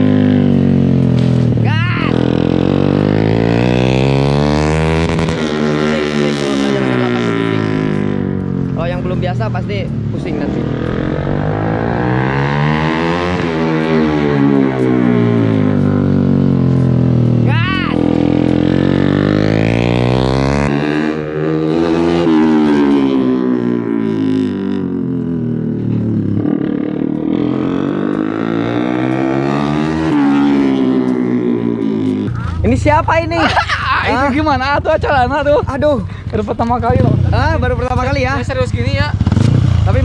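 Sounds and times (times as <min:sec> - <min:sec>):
small motorcycle engine revving: 0:00.0 - 0:08.5, 0:10.4 - 0:32.6, 0:38.9 - 0:40.0.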